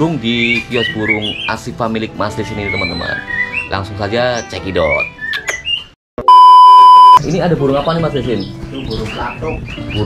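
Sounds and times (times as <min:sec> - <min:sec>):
caged songbirds chirping: 0:00.0 - 0:06.0, 0:07.2 - 0:10.0
steady electronic beep: 0:06.2 - 0:07.2.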